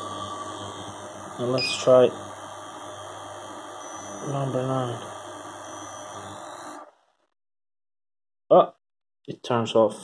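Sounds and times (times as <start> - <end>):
cooling fan hum: 0.0 - 6.9
induction cooker running: 0.0 - 7.0.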